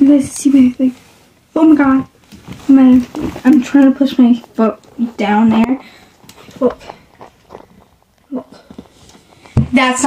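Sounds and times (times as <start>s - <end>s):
person speaking: 0.0s - 7.2s, 8.2s - 10.0s
faint taps and rustles: 1.9s - 10.0s.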